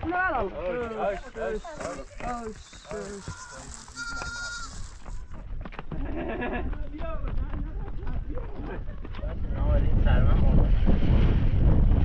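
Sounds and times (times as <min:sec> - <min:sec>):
voices: 0:00.0 - 0:05.3
goat bleating: 0:01.8 - 0:05.4.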